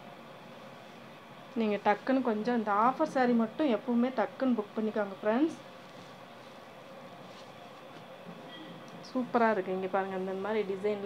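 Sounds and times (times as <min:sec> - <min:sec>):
fabric rustling: 0:05.2 - 0:09.2.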